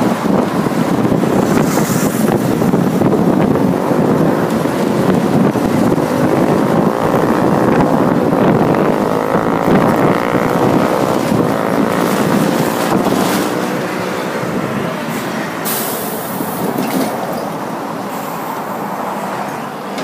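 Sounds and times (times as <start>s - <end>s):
bus engine drone: 0.0s - 20.0s
road and rattle noise: 0.0s - 20.0s.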